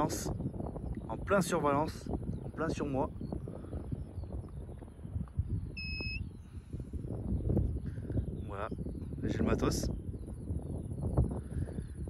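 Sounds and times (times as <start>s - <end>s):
wind rumbling on microphone: 0.0s - 12.0s
short electronic beep: 5.8s - 6.2s.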